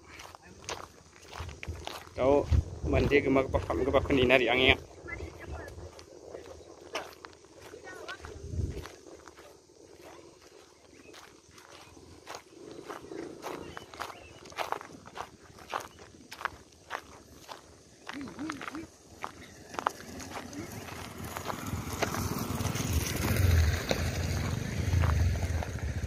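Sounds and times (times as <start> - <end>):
footsteps on gravel: 0.0 - 26.0.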